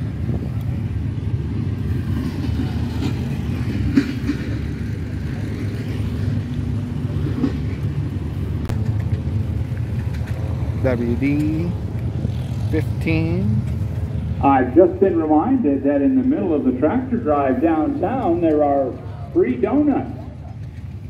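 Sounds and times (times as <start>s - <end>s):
low rumble of engines: 0.0s - 21.0s.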